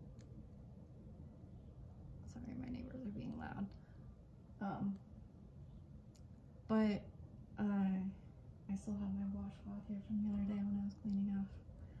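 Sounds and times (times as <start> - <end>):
woman's soft voice: 2.2 - 3.8, 4.6 - 5.1, 6.7 - 11.7.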